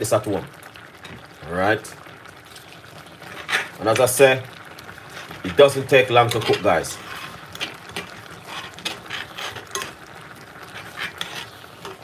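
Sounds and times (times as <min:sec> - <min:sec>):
metal spoon scraping a pot: 0:03.3 - 0:03.8, 0:06.2 - 0:10.0, 0:10.6 - 0:12.0.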